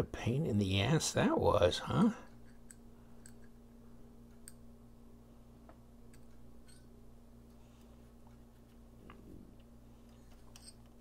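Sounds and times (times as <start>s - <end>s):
small metal knife parts ticking: 6.1s - 6.9s.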